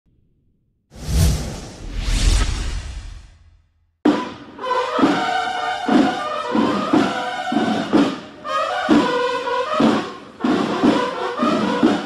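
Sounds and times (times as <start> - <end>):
swoosh with deep rumble: 1.0 - 3.6.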